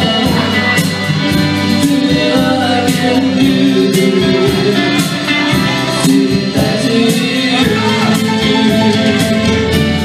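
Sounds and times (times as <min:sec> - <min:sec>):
electric guitar strumming: 0:00.0 - 0:10.0.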